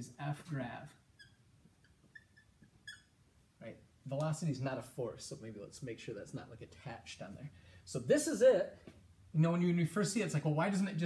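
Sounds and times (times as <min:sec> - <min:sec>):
marker squeaking on whiteboard: 0:00.9 - 0:03.3.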